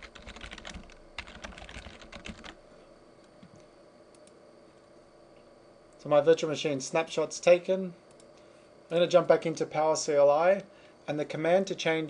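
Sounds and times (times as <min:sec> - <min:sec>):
computer keyboard typing: 0:00.0 - 0:02.6.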